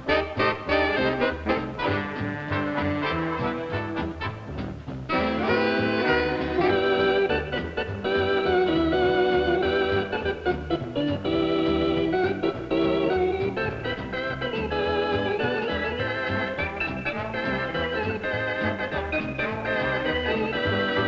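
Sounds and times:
band rhythm section: 0:00.0 - 0:21.0
organ playing swing music: 0:00.0 - 0:21.0.

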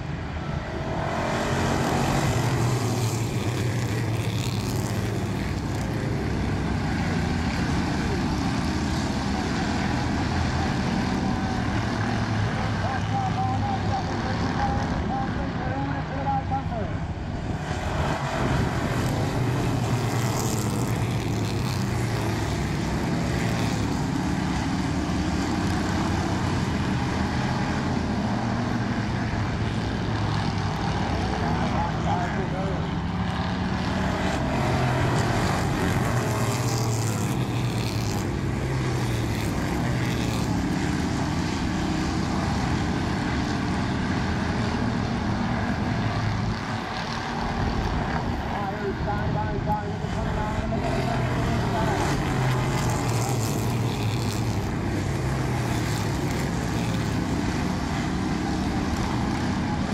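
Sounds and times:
race car engines droning: 0:00.0 - 0:59.9.

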